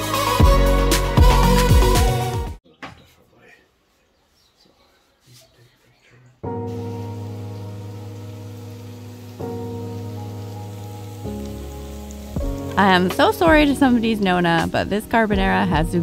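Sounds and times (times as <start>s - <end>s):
background music of held chords: 0.0s - 2.6s, 6.4s - 16.0s
food sizzling in a frying pan: 6.7s - 14.2s.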